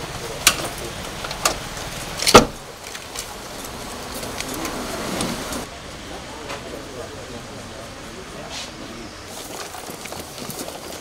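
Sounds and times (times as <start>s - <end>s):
car door thud: 2.2s - 2.6s.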